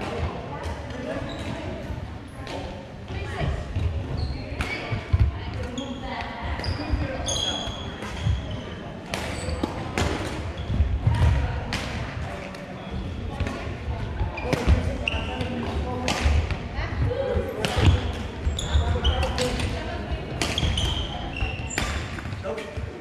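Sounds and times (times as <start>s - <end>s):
voices chattering: 0.0s - 23.0s
sneakers squeaking on hardwood: 14.2s - 15.6s, 17.7s - 19.7s, 20.4s - 22.3s
rackets striking shuttlecocks: 14.4s - 16.6s.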